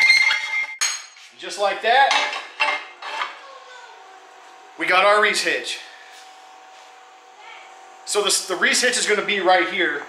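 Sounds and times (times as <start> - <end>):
steel tube scraping and clanking: 0.0 - 1.2, 2.2 - 3.4.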